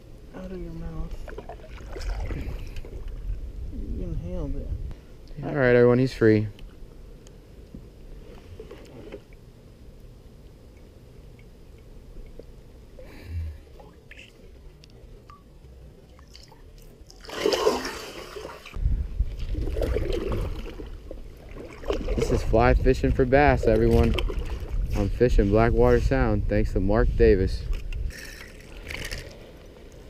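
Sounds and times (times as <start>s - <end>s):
water sloshing and splashing: 0.9s - 3.4s, 15.3s - 25.2s, 28.1s - 30.0s
oars rowing in water: 1.2s - 3.2s, 19.4s - 22.6s, 23.5s - 25.0s.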